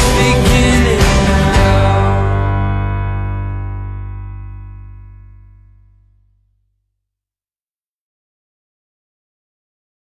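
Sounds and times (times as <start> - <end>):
music chord ringing out: 1.4 - 6.2.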